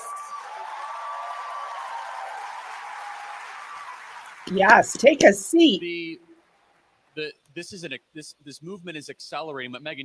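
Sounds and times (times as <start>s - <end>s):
audience applauding: 0.0s - 6.0s
crowd cheering: 0.0s - 7.0s.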